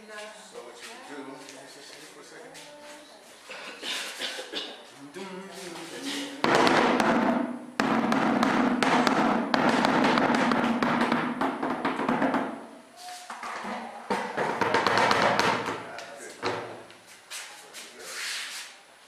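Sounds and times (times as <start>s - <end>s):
bucket drum played with sticks: 6.5s - 12.6s.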